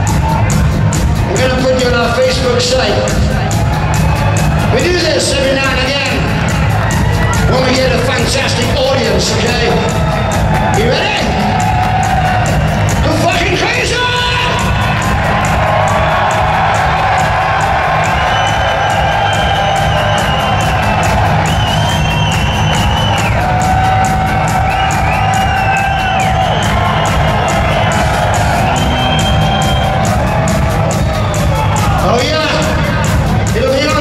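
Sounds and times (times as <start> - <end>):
crowd cheering and whooping: 0.0 - 34.0
pounding drums: 0.0 - 34.0.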